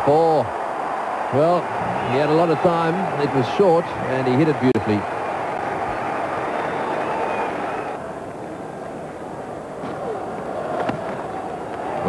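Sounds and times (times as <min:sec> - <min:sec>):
crowd noise from stands: 0:00.0 - 0:12.0.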